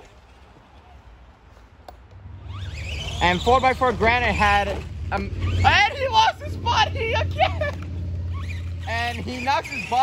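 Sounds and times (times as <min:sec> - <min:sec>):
electric motor whining: 0:02.3 - 0:10.0.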